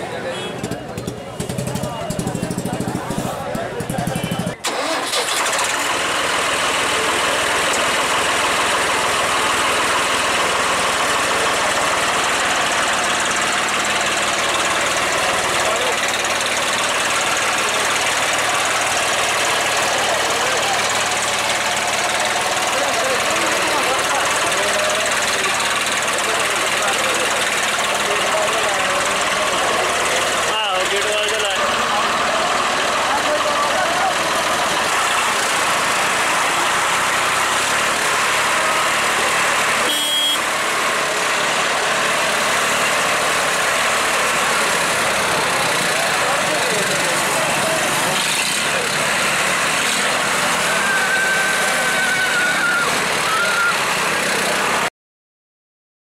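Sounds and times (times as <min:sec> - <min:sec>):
people talking: 0:00.0 - 0:05.2, 0:06.6 - 0:37.7, 0:38.6 - 0:54.9
tractor diesel engine running: 0:00.0 - 0:54.9.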